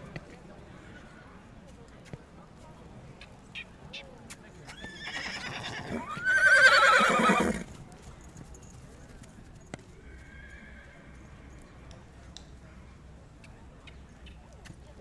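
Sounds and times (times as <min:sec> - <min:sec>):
horse whinnying: 0:04.7 - 0:07.7.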